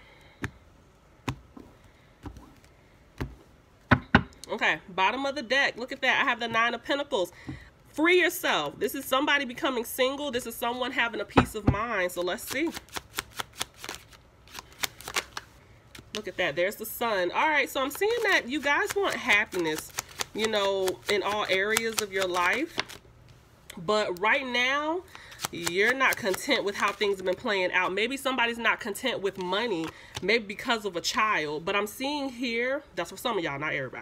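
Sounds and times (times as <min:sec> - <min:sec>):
cards being shuffled: 0:12.3 - 0:16.4, 0:17.8 - 0:23.4, 0:25.1 - 0:28.0.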